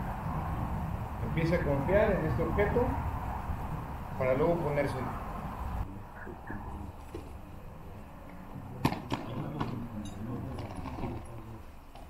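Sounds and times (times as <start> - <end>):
distant voices murmuring: 0.0 - 12.0.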